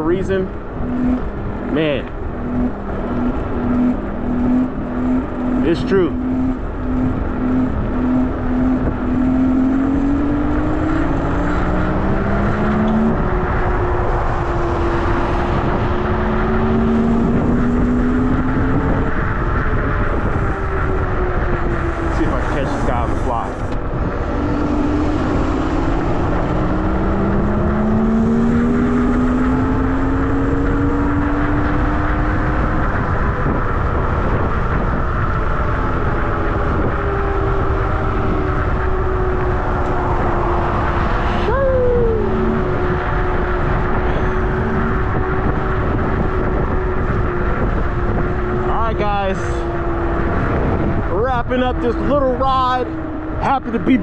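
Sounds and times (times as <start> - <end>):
wind rush on microphone: 0.0 - 54.0.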